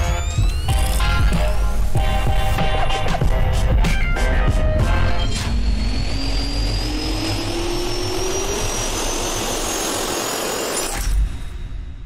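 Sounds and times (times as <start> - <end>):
jet engine spooling up: 0.0 - 3.3, 4.4 - 12.0.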